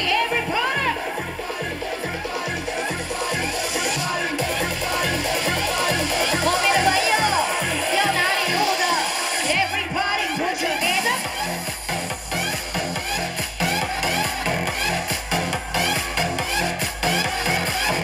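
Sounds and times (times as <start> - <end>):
loud electronic dance music: 0.0 - 18.0.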